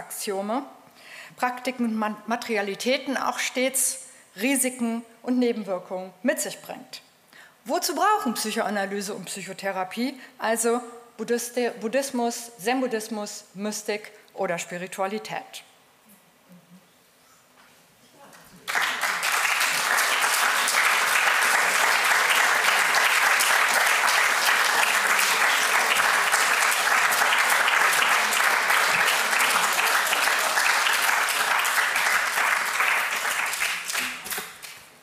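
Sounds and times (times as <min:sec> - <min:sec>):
audience applauding: 0:18.6 - 0:34.8.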